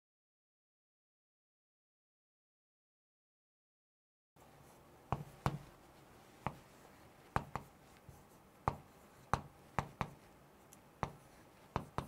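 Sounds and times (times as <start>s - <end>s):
chalk tapping on chalkboard: 5.1s - 10.4s, 11.0s - 12.0s.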